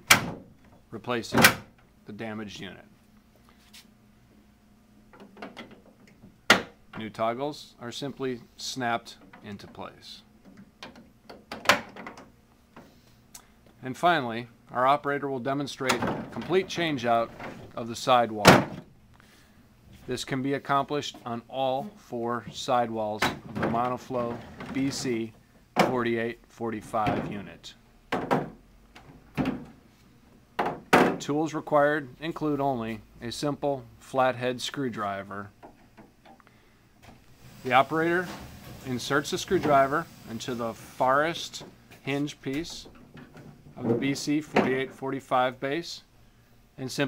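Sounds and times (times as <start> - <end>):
plastic walls folding thunks: 0.0 - 1.8, 10.5 - 12.9, 15.8 - 17.8, 18.4 - 18.9, 22.5 - 26.1, 28.1 - 29.8.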